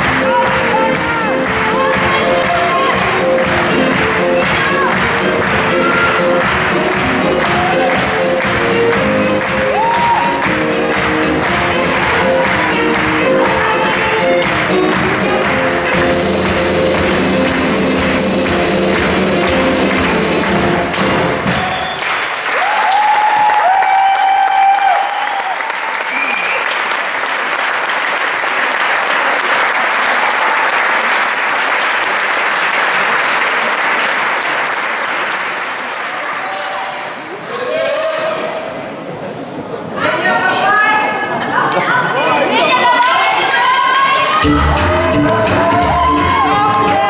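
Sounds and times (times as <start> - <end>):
cheering calls: 0.0 - 8.4, 9.6 - 10.7, 21.5 - 27.0, 36.1 - 38.8, 40.0 - 47.0
latin dance music: 0.0 - 22.0, 43.6 - 47.0
audience applauding: 0.0 - 37.4, 43.0 - 47.0.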